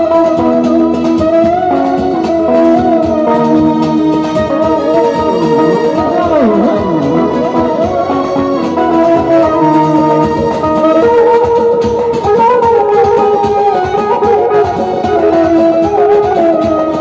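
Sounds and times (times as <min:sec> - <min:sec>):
synthesizer keyboard melody: 0:00.0 - 0:17.0
drum beat: 0:00.4 - 0:17.0.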